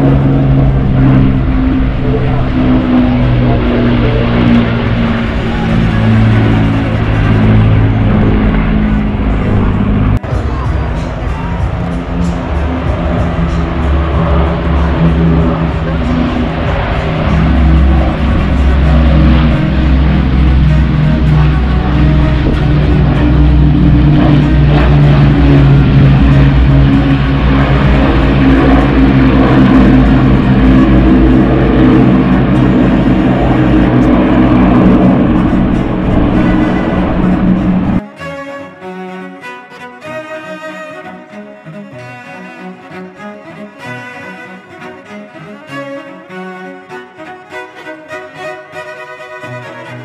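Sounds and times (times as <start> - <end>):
propeller plane engines droning: 0.0 - 50.0.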